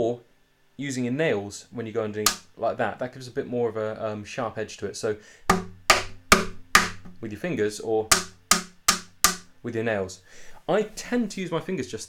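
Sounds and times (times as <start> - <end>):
taps on acoustic guitar body: 2.3 - 2.5, 5.5 - 7.2, 8.1 - 9.5.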